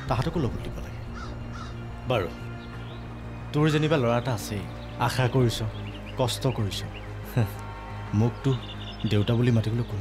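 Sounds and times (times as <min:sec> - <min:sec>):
distant bird chirps: 0:00.0 - 0:10.0
soft background music: 0:00.0 - 0:10.0
crow cawing: 0:01.1 - 0:02.0.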